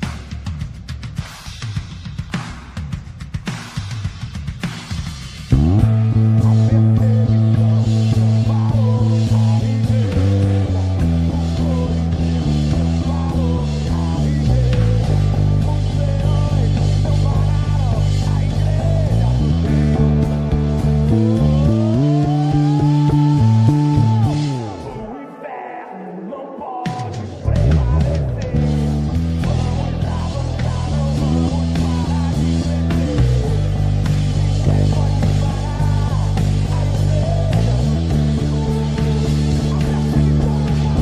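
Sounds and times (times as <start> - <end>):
band backing track: 0.0 - 25.4, 26.8 - 41.0
electric bass: 4.6 - 25.1, 27.2 - 41.0.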